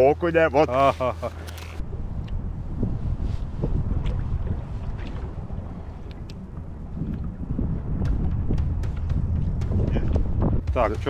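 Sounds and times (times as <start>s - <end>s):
water lapping against boat hull: 0.3s - 10.7s
wind buffeting microphone: 1.8s - 11.0s.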